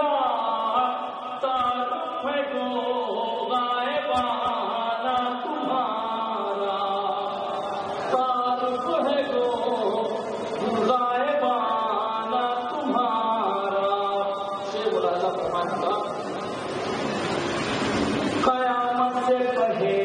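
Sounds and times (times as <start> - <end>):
man chanting melodically: 0.0 - 16.2, 18.4 - 20.0.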